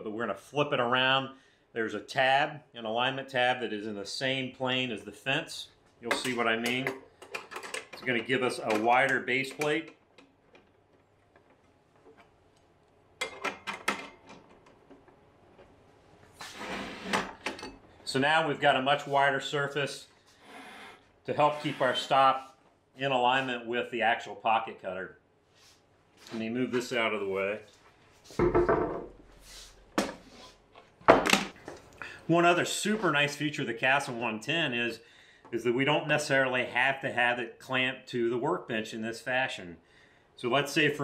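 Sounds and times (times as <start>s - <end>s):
metal clicks and knocks: 6.1s - 12.3s
boards scraping on workbench: 16.4s - 17.4s
boards knocking on workbench: 28.4s - 29.2s.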